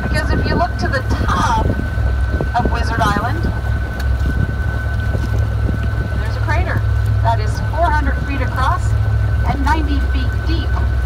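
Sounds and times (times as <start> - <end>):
boat engine droning: 0.0 - 11.0
high whine: 0.0 - 11.0
person talking: 6.2 - 8.9, 9.5 - 10.8.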